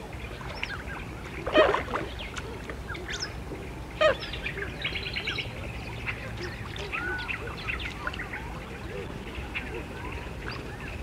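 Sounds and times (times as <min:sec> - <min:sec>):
many birds calling: 0:00.5 - 0:11.0.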